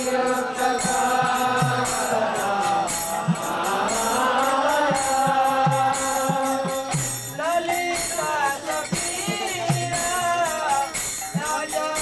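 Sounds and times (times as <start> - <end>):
group chanting: 0.0 - 10.3
hand cymbals beat: 0.0 - 12.0.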